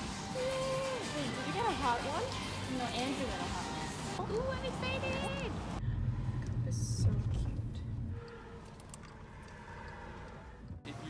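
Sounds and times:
faint low rumble: 0:05.7 - 0:10.8.

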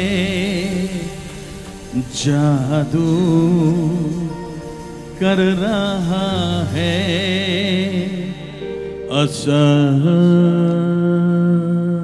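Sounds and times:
man singing a long note: 0:05.2 - 0:12.0.

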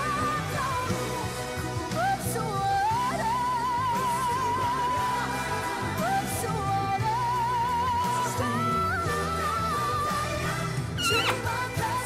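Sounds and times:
woman singing high note: 0:11.0 - 0:11.6.

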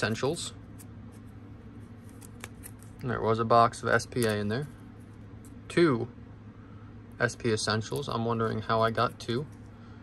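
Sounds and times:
low steady hum: 0:00.0 - 0:10.0
cards in plastic sleeves scraping: 0:00.8 - 0:03.0.

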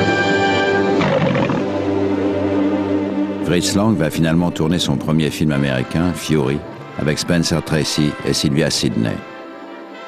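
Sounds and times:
orchestral fanfare brass chord: 0:00.0 - 0:01.0
lion roaring: 0:00.8 - 0:01.8.

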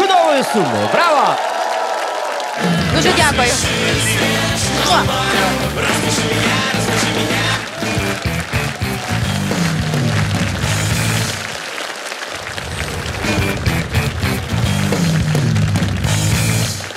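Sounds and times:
loud rock music: 0:02.8 - 0:11.5, 0:13.2 - 0:16.9.

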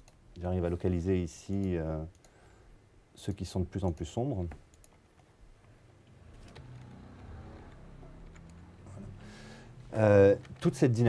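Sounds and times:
soft clicks: 0:01.4 - 0:02.4, 0:03.2 - 0:09.0.

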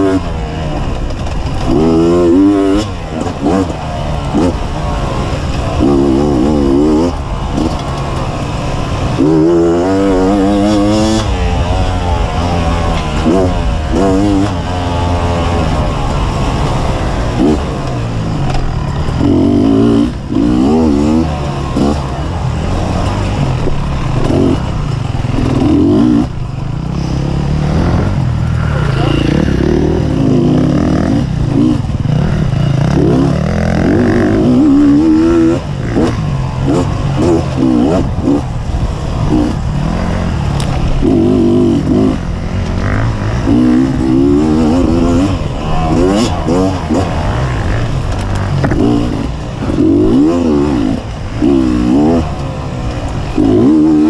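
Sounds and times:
dirt bike engine revving: 0:00.0 - 0:54.0.

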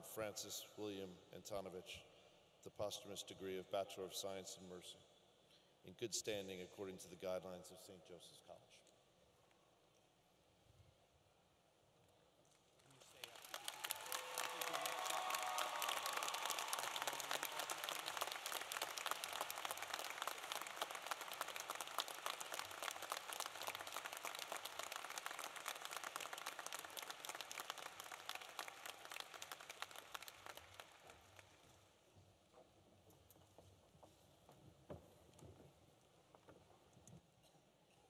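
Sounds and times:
large audience applauding: 0:12.9 - 0:31.8.

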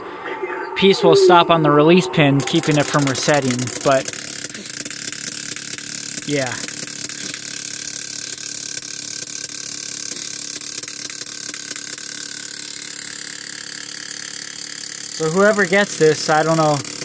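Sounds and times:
mechanical hum with hiss: 0:00.0 - 0:17.0.

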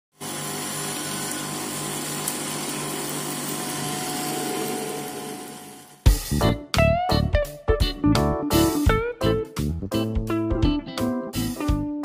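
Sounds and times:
electric motor humming: 0:00.2 - 0:06.0.

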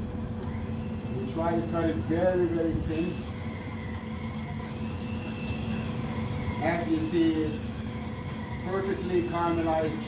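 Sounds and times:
electric knife motor hum: 0:00.0 - 0:10.0.

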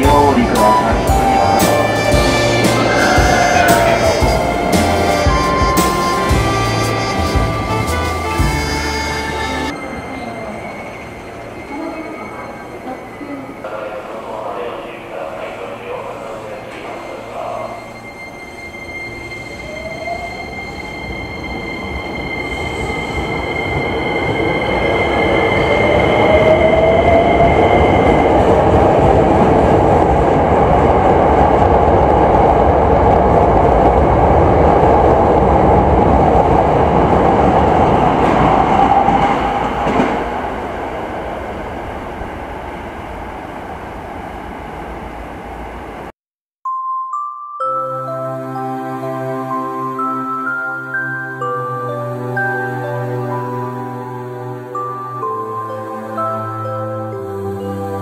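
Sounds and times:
steady high tone: 0:00.0 - 0:29.8, 0:46.6 - 0:58.0
train running noise: 0:00.0 - 0:46.1.

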